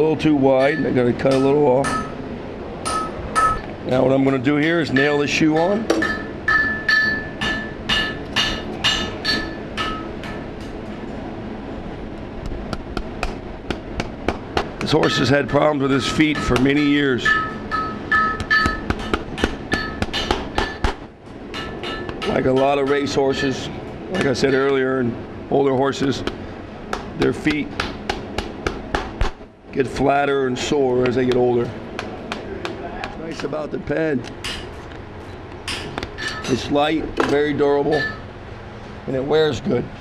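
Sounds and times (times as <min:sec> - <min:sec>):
metal-on-metal clinks: 0:16.3 - 0:19.1.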